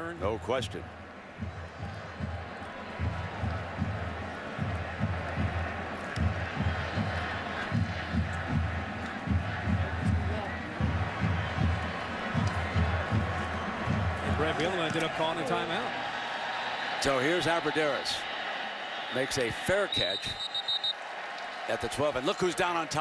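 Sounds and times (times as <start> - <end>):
stadium crowd noise: 0.0 - 23.0
deep rhythmic thumps: 0.8 - 15.0.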